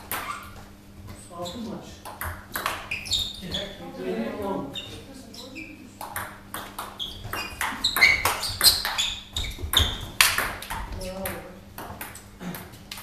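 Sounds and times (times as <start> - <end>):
table tennis ball taps: 2.0 - 2.9, 6.0 - 9.0, 9.6 - 13.0
voices talking: 3.1 - 6.2.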